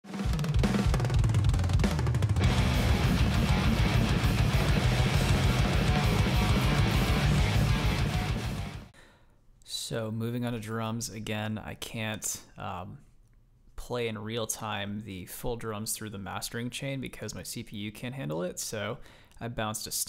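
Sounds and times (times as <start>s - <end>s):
heavy metal music: 0.2s - 8.9s.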